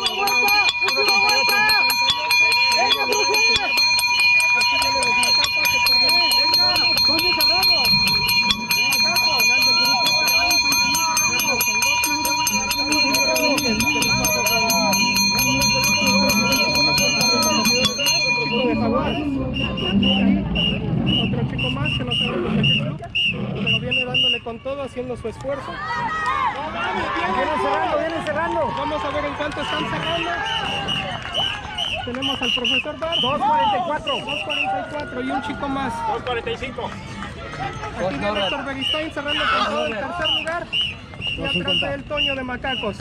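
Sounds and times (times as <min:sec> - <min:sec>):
hand bell ringing rapidly: 0:00.0 - 0:20.2
voices calling out: 0:00.0 - 0:24.1.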